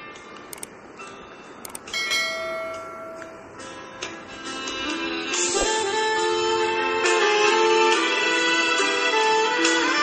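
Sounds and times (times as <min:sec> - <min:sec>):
bell ding: 0:01.9 - 0:03.6.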